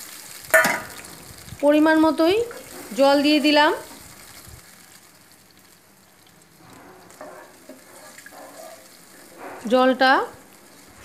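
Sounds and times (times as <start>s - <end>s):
gravy sizzling in a pan: 0.0s - 11.0s
wooden spatula stirring: 6.6s - 10.0s.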